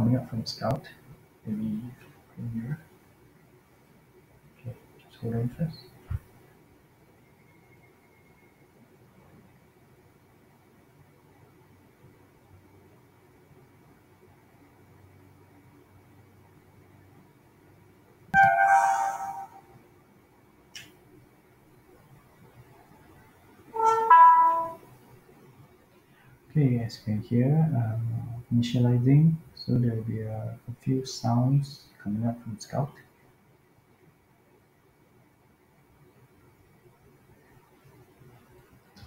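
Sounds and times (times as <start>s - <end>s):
electronic start-up jingle: 18.4s - 19.7s, 24.0s - 24.8s
faint click: 20.7s - 21.0s.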